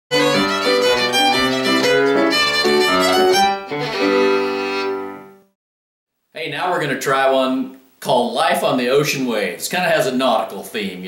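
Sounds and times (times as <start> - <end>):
lower accompanying notes: 0.1 - 5.3
fiddle playing a quick tune: 0.1 - 5.4.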